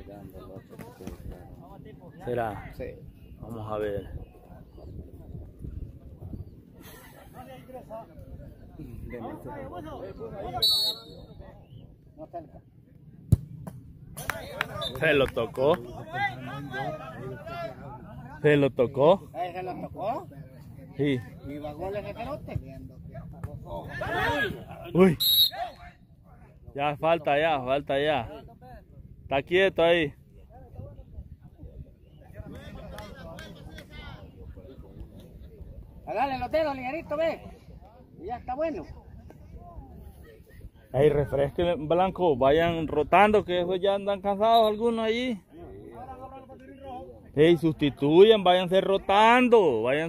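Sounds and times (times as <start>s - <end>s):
wind rumble on microphone: 2.8s - 7.1s, 30.3s - 36.5s
referee's whistle blast: 10.6s - 11.4s, 25.2s - 25.8s.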